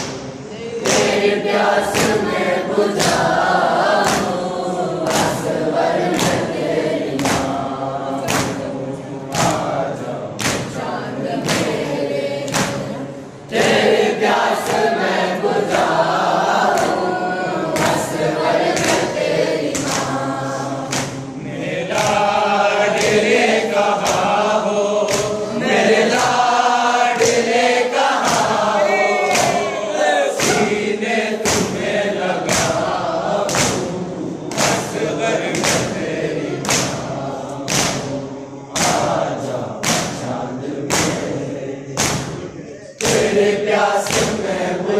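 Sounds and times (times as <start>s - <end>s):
boys chanting in unison: 0.0s - 44.9s.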